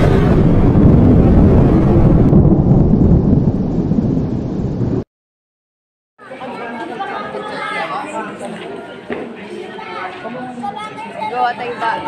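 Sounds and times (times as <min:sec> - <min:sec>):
deep rumbling sound effect: 0:00.0 - 0:05.1
people chattering: 0:06.2 - 0:12.0.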